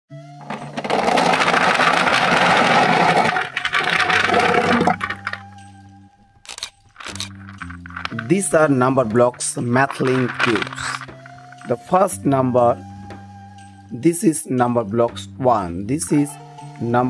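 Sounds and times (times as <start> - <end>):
plastic cubes clattering onto tray: 0.4 - 5.4, 6.5 - 8.4, 9.9 - 11.7.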